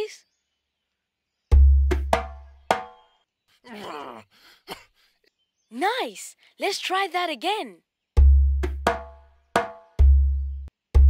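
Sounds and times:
sliding vocal groan: 3.7 - 4.4.

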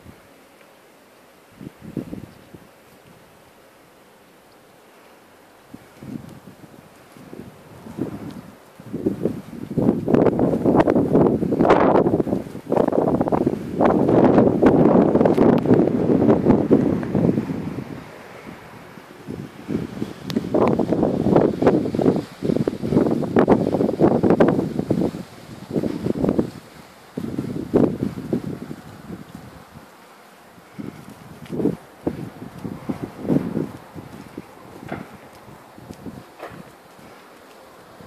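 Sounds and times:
wind buffeting microphone: 0.0 - 0.4, 1.4 - 3.6, 5.5 - 38.0.

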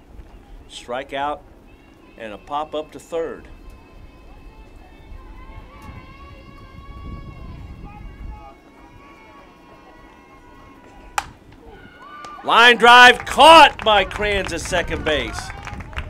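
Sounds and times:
faint distant voices: 0.0 - 15.9
bat hitting ball: 11.2 - 11.4.

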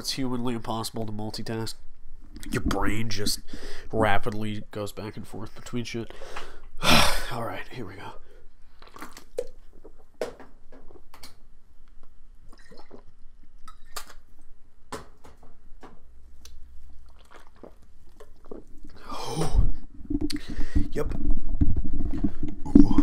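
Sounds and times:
harsh breath: 3.5 - 3.9
person gulping liquor: 8.7 - 10.2, 12.5 - 14.2, 17.0 - 20.9.

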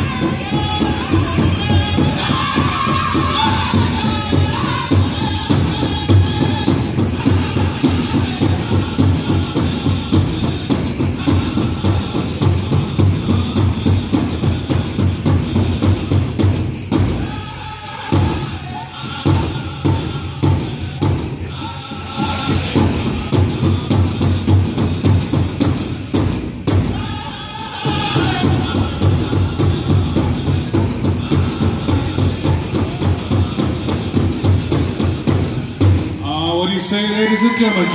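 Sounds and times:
big drum beaten steadily: 0.0 - 37.9.

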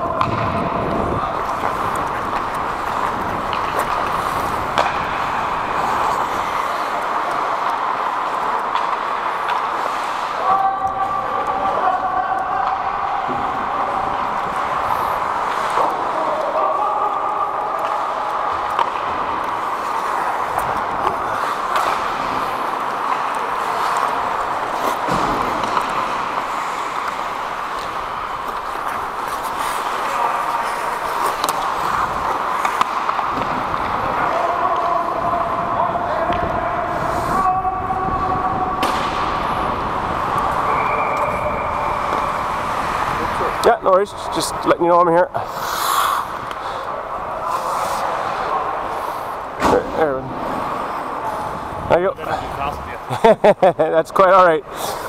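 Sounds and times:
sticks and puck clacking: 0.0 - 53.1
players' voices: 0.0 - 55.0
skate blades scraping ice: 0.2 - 12.1, 12.7 - 16.5, 17.7 - 37.5, 38.2 - 44.8, 45.4 - 49.6, 54.6 - 55.0.

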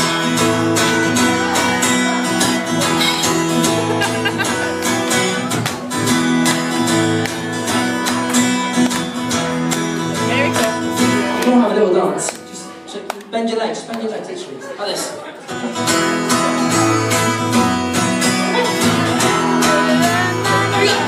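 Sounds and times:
acoustic guitar strumming: 0.0 - 13.1, 15.5 - 21.0.

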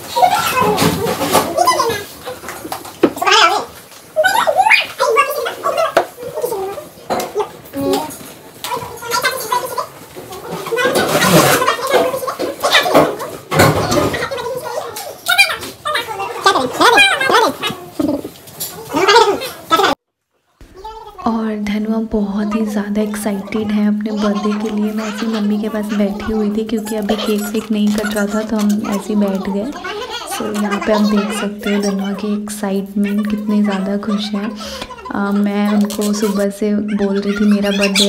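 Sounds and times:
child's gargly vocal sounds: 22.3 - 38.0.

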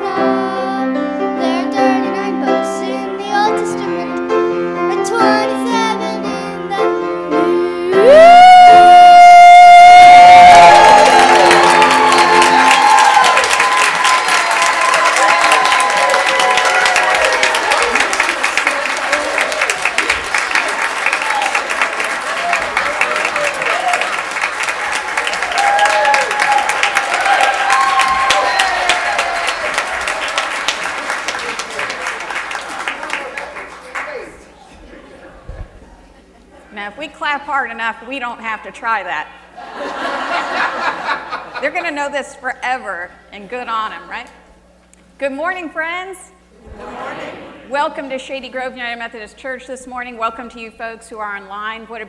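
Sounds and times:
children singing: 0.0 - 4.1
audience applauding: 8.1 - 34.5.

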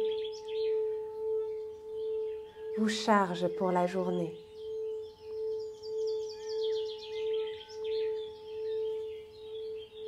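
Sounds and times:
singing bowl ringing: 0.0 - 10.0.

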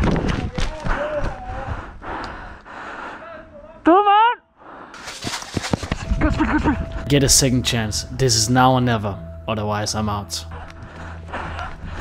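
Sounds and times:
footfalls on dirt path: 0.0 - 1.7
person breathing hard: 0.9 - 3.3, 4.6 - 5.4, 10.5 - 12.0.

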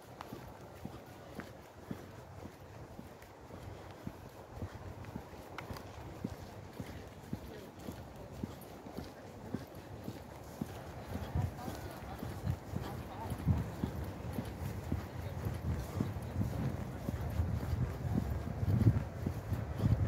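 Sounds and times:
footsteps on asphalt: 0.0 - 20.0.

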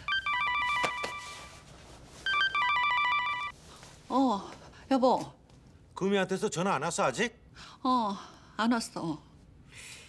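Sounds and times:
phone ringtone trilling: 0.0 - 1.6, 2.3 - 3.6.

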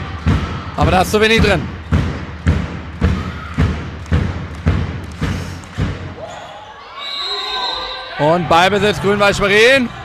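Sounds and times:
ball bouncing on hall floor: 0.1 - 6.2.

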